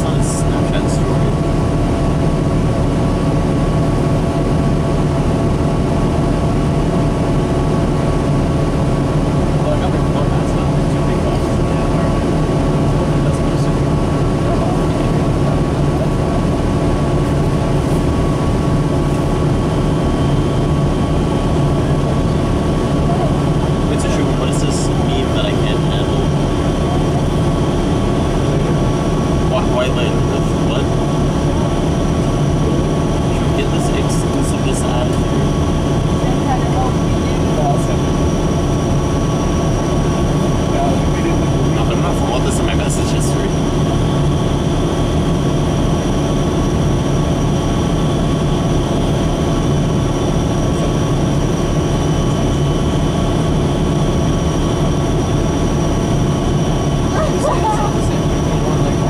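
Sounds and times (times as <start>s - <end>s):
bus engine drone: 0.0s - 59.0s
high whine: 0.0s - 59.0s
road noise: 0.0s - 59.0s.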